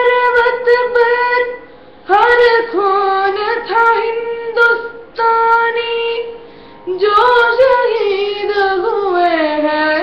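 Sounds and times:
boy singing: 0:00.0 - 0:06.3, 0:06.9 - 0:10.0.

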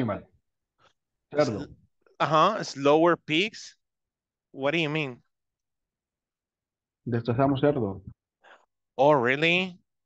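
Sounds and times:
man speaking: 0:01.3 - 0:03.8, 0:04.5 - 0:05.3, 0:09.0 - 0:09.8.

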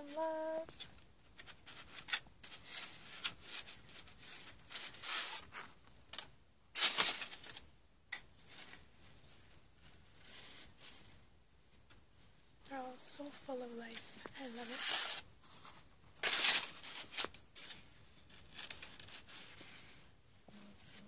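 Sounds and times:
paper sheets rustling: 0:00.0 - 0:11.2, 0:13.2 - 0:21.0.

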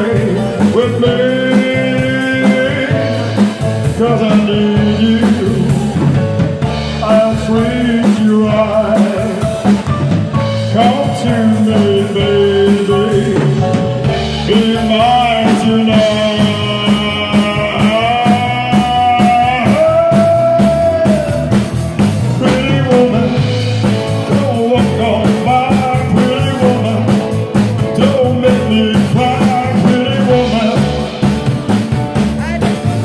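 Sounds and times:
man singing into a microphone: 0:00.0 - 0:31.4
drum kit beat: 0:00.0 - 0:33.0
keyboard: 0:00.0 - 0:33.0
rock and roll band playing: 0:00.0 - 0:33.0.

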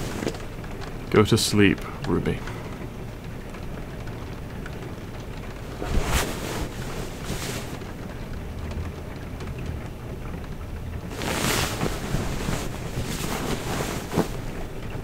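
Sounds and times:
soft rustles: 0:00.0 - 0:00.9, 0:05.2 - 0:08.3, 0:11.1 - 0:15.0
steady rain: 0:00.0 - 0:15.0.

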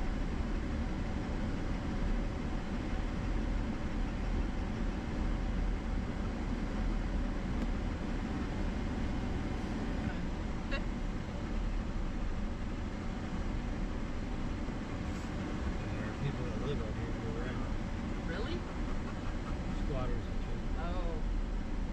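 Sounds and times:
engine running: 0:00.0 - 0:21.9
tyre and gravel road noise: 0:00.0 - 0:21.9.

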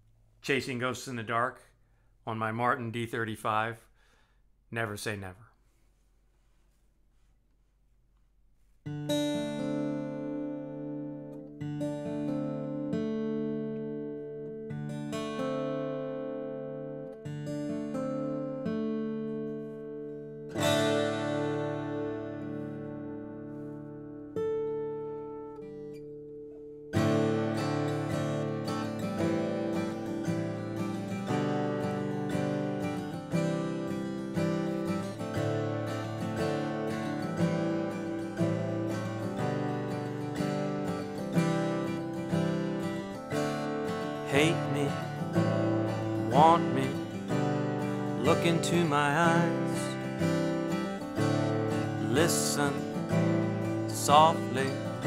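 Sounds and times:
acoustic guitar strumming: 0:08.8 - 0:55.0.

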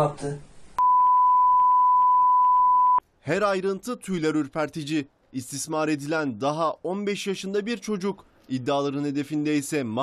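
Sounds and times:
censor bleep: 0:00.8 - 0:03.0.

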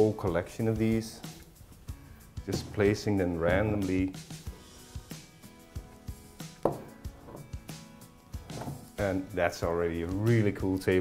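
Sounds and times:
soft background music: 0:00.0 - 0:11.0
glass bottles knocking on wood: 0:06.6 - 0:07.6, 0:08.5 - 0:09.0.

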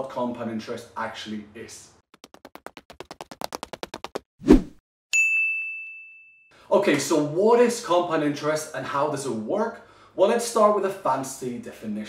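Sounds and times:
rapid clicks: 0:02.2 - 0:04.2
high bell-like ding: 0:05.1 - 0:06.6.

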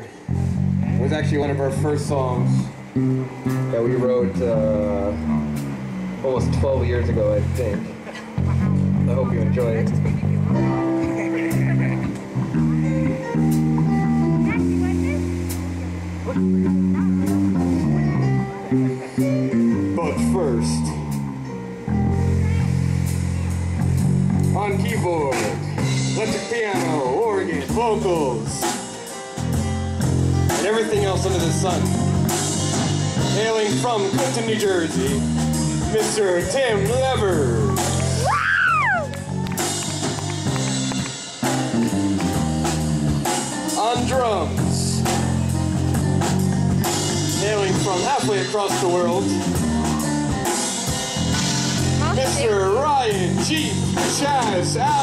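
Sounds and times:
drum or cymbal hits: 0:00.0 - 0:19.6, 0:20.2 - 0:55.0
bass guitar: 0:00.0 - 0:55.0
electric guitar: 0:00.0 - 0:55.0
organ chords: 0:00.0 - 0:55.0.

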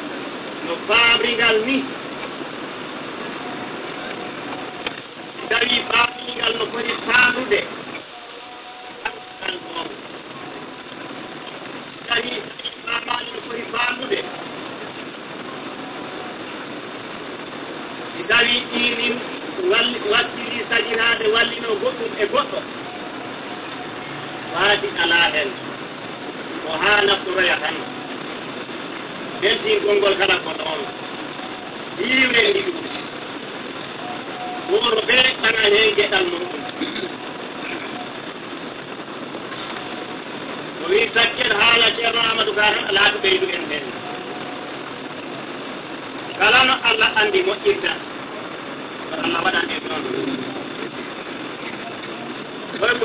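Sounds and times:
recording hiss: 0:00.0 - 0:53.0
man speaking: 0:00.7 - 0:02.0, 0:05.4 - 0:07.8, 0:12.1 - 0:14.4, 0:18.2 - 0:22.7, 0:24.4 - 0:25.6, 0:26.6 - 0:27.9, 0:29.4 - 0:31.0, 0:32.0 - 0:33.0, 0:34.4 - 0:37.8, 0:40.8 - 0:44.0, 0:46.4 - 0:48.1, 0:49.1 - 0:50.5, 0:52.8 - 0:53.0.

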